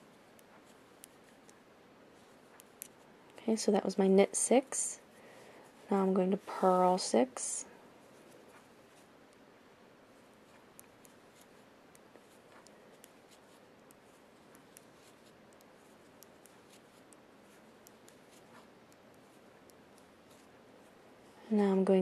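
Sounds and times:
quiet hiss: 0.0 - 22.0
knitting needles clicking: 0.2 - 1.6, 2.2 - 3.4, 10.4 - 20.5.

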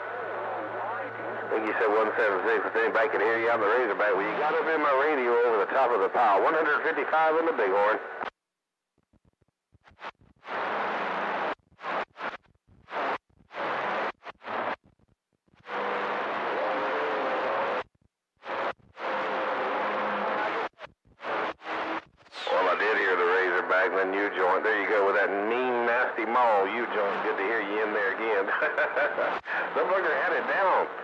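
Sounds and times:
man's voice over radio: 0.8 - 8.1, 22.4 - 31.0
radio static hiss bursts: 1.5 - 8.4, 9.8 - 15.0, 15.6 - 31.0.

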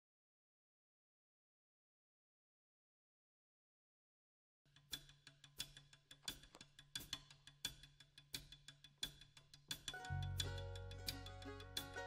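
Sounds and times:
drum stick strokes: 4.9 - 12.0.

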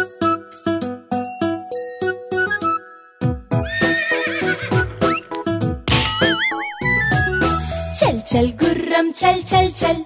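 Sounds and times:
bouncy children's song music: 0.0 - 3.7, 4.7 - 10.0
horse whinny: 3.6 - 5.3.

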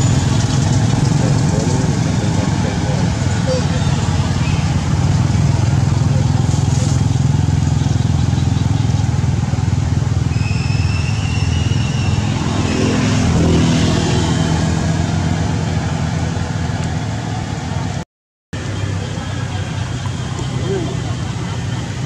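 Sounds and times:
low engine rumble: 0.0 - 18.0, 18.6 - 22.0
thin high whistle tone: 10.3 - 12.4.

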